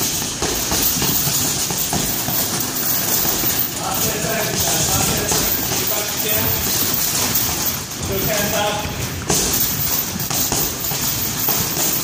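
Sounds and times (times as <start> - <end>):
punches on heavy bag: 0.0 - 8.5, 9.1 - 12.0.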